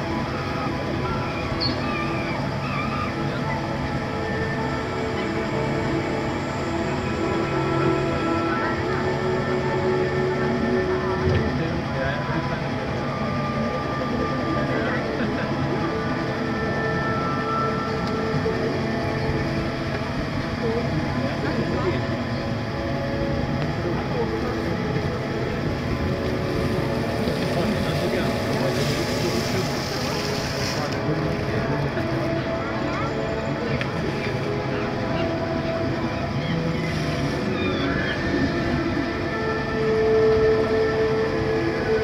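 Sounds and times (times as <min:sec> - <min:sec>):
monorail train hum and rumble: 0:00.0 - 0:42.0.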